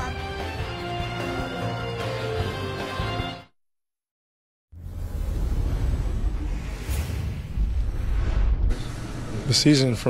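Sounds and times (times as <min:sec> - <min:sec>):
music: 0:00.0 - 0:03.6
deep rumbling whoosh: 0:04.8 - 0:09.4.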